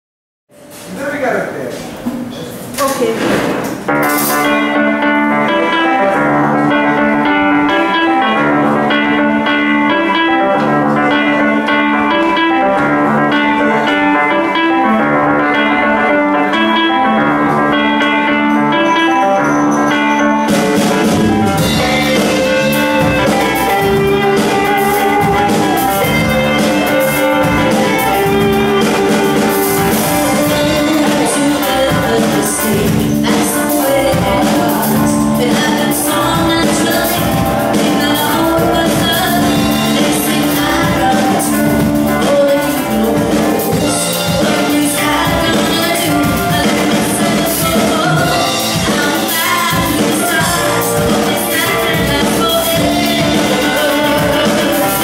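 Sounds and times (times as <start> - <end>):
drum kit and cymbals: 0.5 - 6.9, 18.4 - 55.0
keyboard: 0.5 - 55.0
electric guitar riff: 3.8 - 55.0
bass: 3.9 - 55.0.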